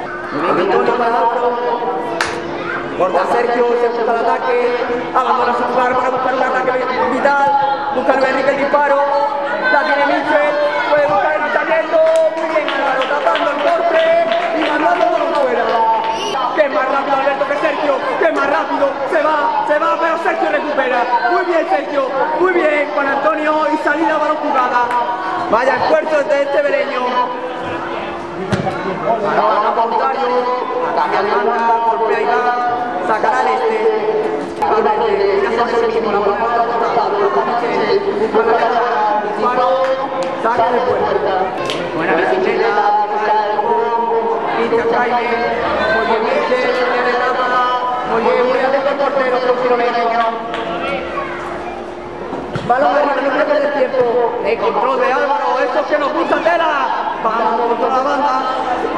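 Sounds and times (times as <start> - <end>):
people talking: 0.0 - 58.9.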